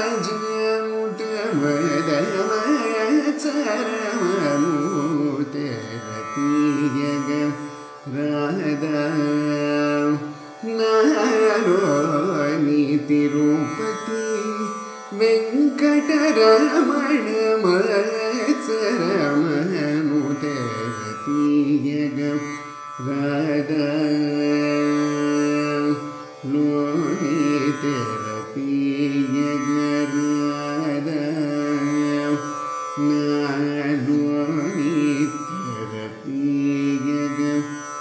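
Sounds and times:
man singing: 0:00.0 - 0:38.0
plucked tanpura drone: 0:00.0 - 0:38.0.

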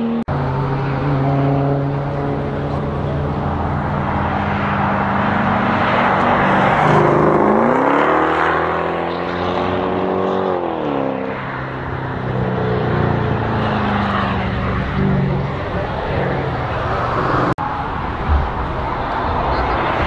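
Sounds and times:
car engine revving hard: 0:00.0 - 0:17.6.

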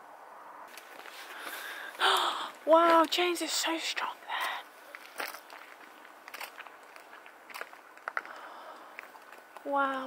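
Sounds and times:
footsteps crunching on snow: 0:00.7 - 0:10.0.

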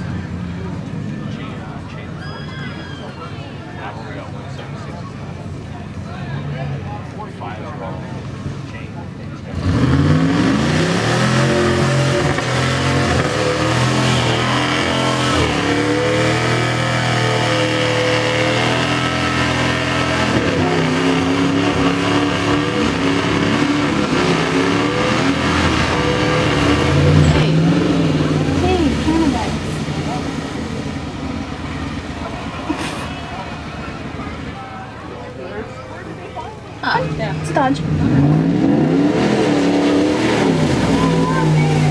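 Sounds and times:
truck engine revving: 0:00.0 - 0:41.9.

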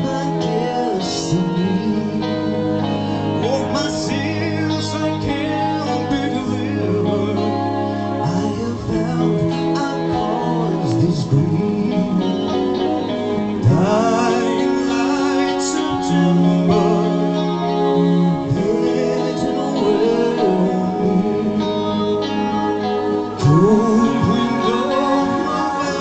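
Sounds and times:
live rock band: 0:00.0 - 0:26.0
male lead vocal: 0:00.0 - 0:26.0
rising pitch sweep: 0:00.0 - 0:26.0.

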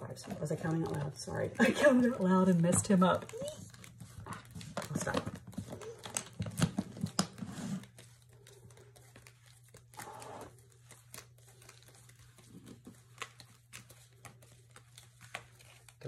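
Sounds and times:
paper envelopes rustling: 0:00.0 - 0:16.0.

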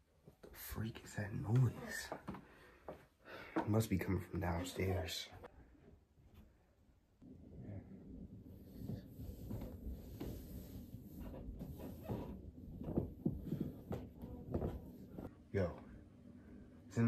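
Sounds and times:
footsteps on wooden stairs: 0:01.5 - 0:03.8, 0:11.1 - 0:15.3.

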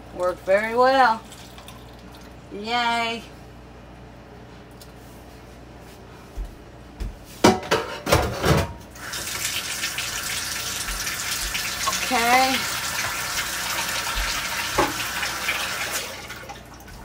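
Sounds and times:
kitchen faucet running: 0:09.0 - 0:17.0.

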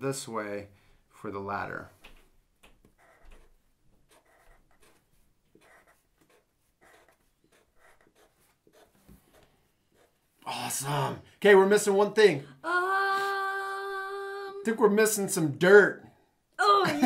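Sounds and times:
marker scratching on paper: 0:02.8 - 0:10.3.

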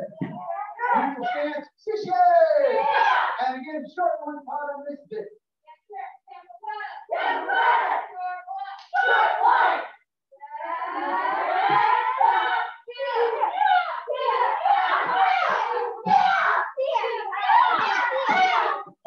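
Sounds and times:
children shouting: 0:02.3 - 0:03.4, 0:06.7 - 0:19.0
group shout: 0:02.3 - 0:03.5, 0:06.7 - 0:19.0.

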